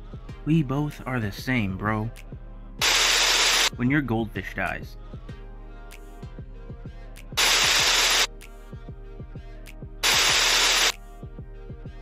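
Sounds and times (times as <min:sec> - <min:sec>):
harsh static bursts: 0:02.8 - 0:03.7, 0:07.4 - 0:08.3, 0:10.0 - 0:10.9.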